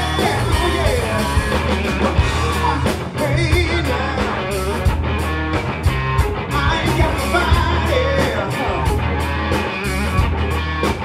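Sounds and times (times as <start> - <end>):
singer's voice: 0.0 - 4.9, 6.5 - 9.2
live rock band playing: 0.0 - 11.0.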